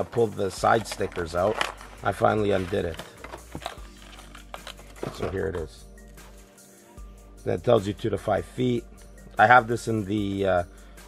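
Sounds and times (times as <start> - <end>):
plastic packaging crinkling: 0.0 - 5.7.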